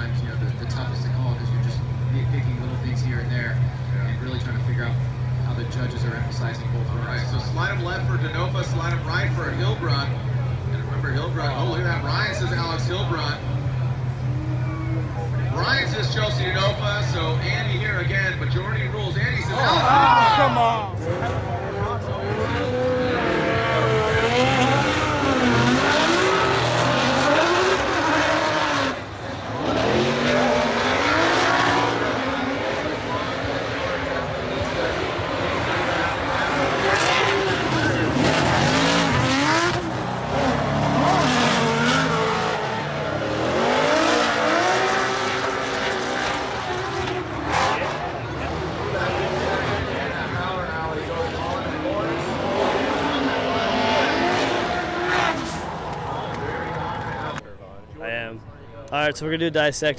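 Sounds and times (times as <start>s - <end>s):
car engines revving: 0.0s - 58.0s
spinning tyre noise: 21.0s - 57.4s.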